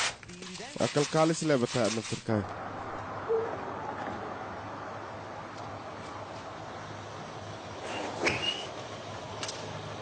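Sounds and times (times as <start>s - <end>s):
steady background noise: 0.0s - 10.0s.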